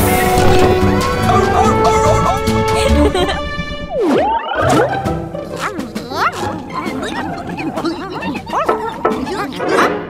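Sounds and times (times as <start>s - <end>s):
cartoon creatures babbling: 1.2s - 2.6s, 4.3s - 10.0s.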